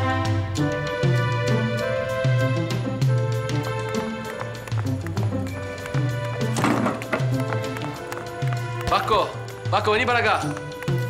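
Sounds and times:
music with rhythmic beat and bass: 0.0 - 11.0.

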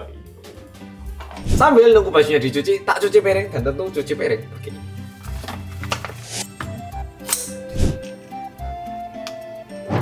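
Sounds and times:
light melody over low beat: 0.0 - 10.0.

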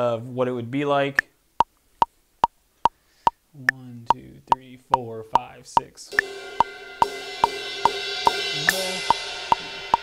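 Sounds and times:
metronome clicking: 3.7 - 6.3, 7.4 - 10.0
electronic cymbal hit: 6.1 - 10.0.

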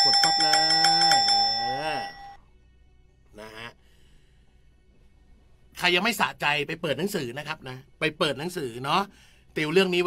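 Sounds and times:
electronic bell chime rattling: 0.0 - 2.4.

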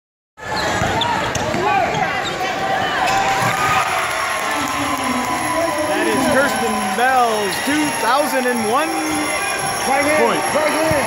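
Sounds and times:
crowd noise: 0.4 - 11.0
voices shouting: 1.0 - 11.0.

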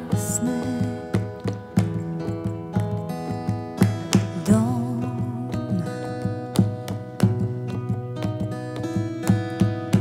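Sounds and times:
fingerpicked acoustic guitar: 0.0 - 10.0.

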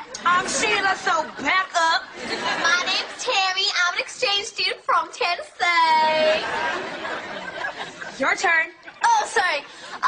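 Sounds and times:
young woman talking quickly: 8.2 - 9.7.

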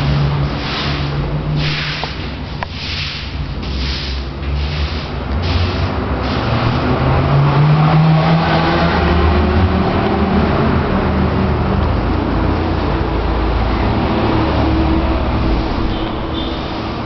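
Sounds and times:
road traffic engine rumble: 0.0 - 17.0.

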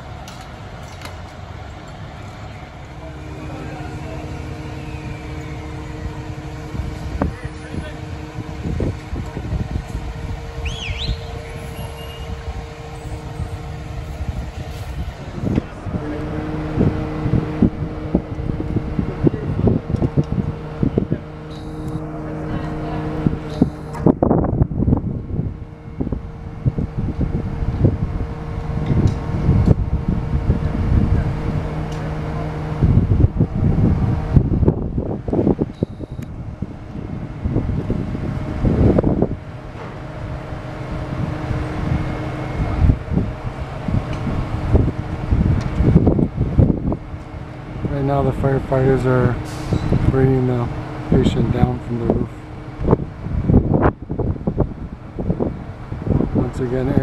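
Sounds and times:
fire truck diesel engine droning: 0.0 - 57.0
wind buffeting microphone: 0.0 - 57.0.

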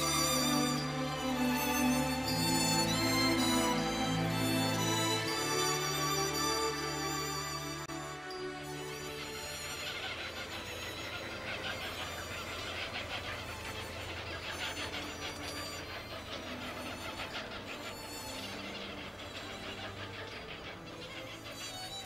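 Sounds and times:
background music: 0.0 - 22.0
low sustained drone: 0.0 - 22.0
nestlings squealing: 0.0 - 22.0.

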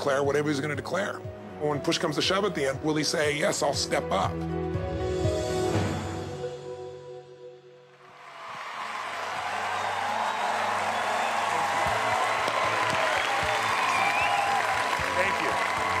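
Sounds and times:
music: 0.0 - 8.1, 8.8 - 16.0
audience applauding and cheering: 8.0 - 16.0
shouts and whoops: 8.3 - 16.0.

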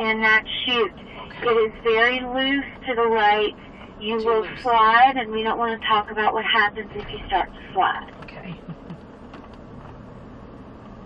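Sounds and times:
low drone inside truck cab: 0.0 - 11.0.

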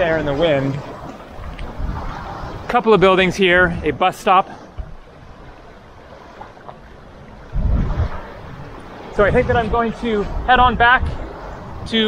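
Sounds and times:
steady hiss of wind: 0.0 - 12.0
wind buffeting microphone: 0.0 - 12.0.

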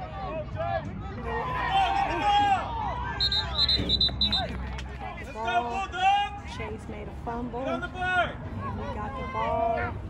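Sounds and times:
spectators shouting: 0.0 - 3.8.

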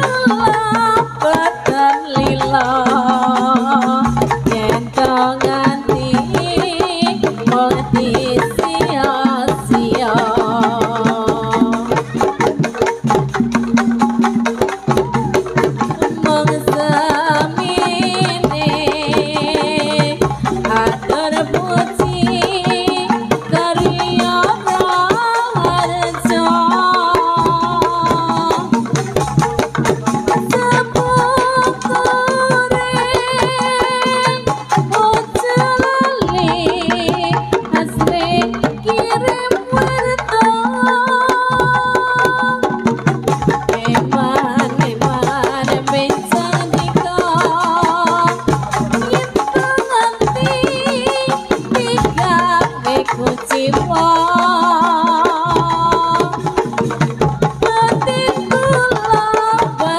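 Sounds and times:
pitched metal percussion: 0.0 - 59.9
quick dense drum strokes: 2.4 - 40.7
wavering melody line: 6.9 - 35.0.

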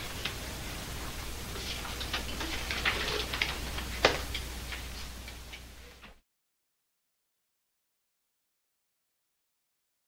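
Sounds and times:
pages rustling: 1.5 - 5.2
paper snap: 1.7 - 5.4.

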